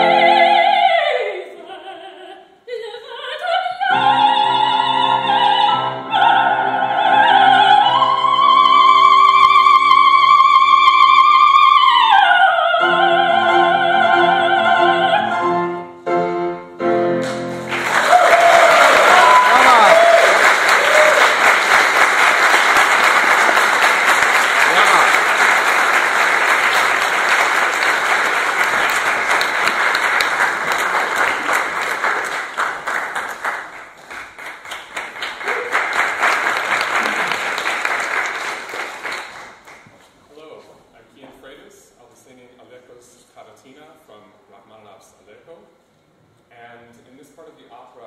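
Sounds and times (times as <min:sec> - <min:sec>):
operatic soprano singing: 0:00.0 - 0:15.6
audience applauding: 0:17.2 - 0:39.9.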